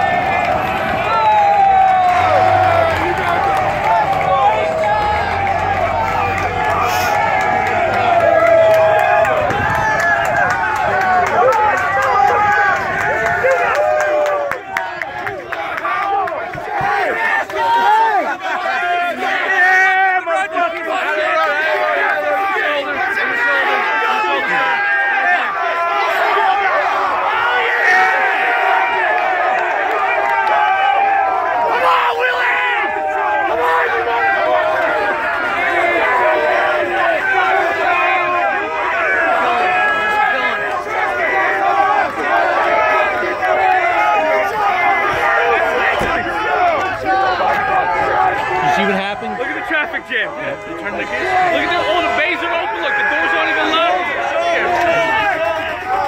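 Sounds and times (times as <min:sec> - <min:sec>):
crowd of men shouting: 0:00.0 - 0:56.0.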